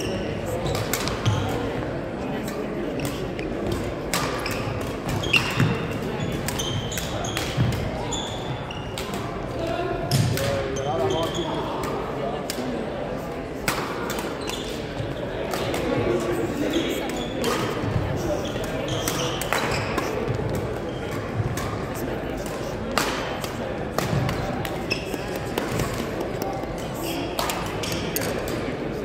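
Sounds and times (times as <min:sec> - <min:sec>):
shoe squeaks on wooden floor: 0:24.8 - 0:25.4.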